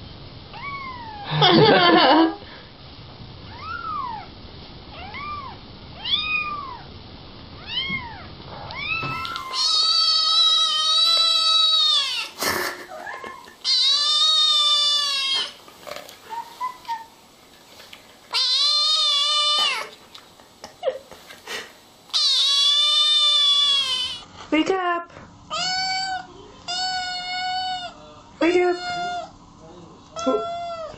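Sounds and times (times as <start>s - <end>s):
kitten's long loud meows: 4.9s - 6.9s, 7.6s - 12.3s
small kitten mewing: 4.9s - 6.9s, 7.6s - 15.6s, 18.3s - 19.9s, 22.1s - 24.2s, 25.5s - 28.0s, 28.7s - 29.3s, 30.2s - 30.9s.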